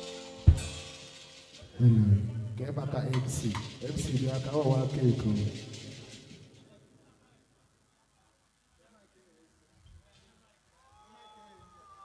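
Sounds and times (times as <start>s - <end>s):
sharp drum hit: 0.5s - 1.4s.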